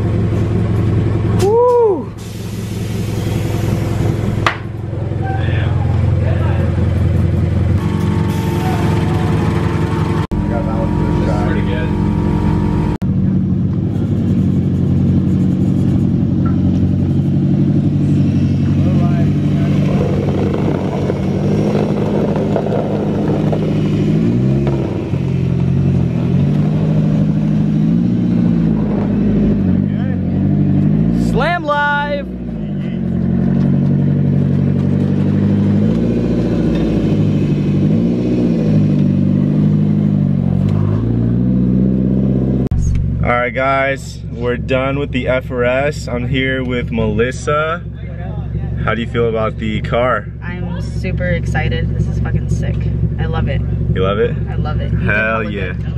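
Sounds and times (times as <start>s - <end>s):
car engine idling: 0.0s - 55.9s
car engine revving: 2.1s - 55.9s.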